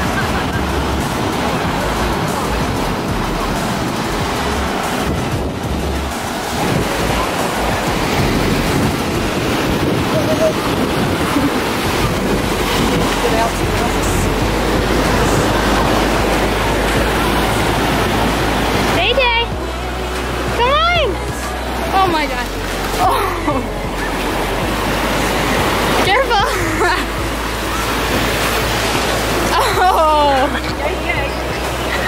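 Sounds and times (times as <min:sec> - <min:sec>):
ocean waves breaking on beach: 0:00.0 - 0:32.0
wind rumbling on microphone: 0:00.0 - 0:32.0.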